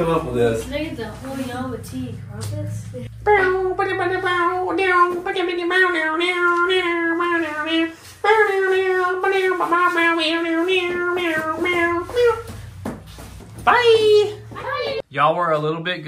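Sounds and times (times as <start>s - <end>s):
high voice singing: 3.1s - 12.6s.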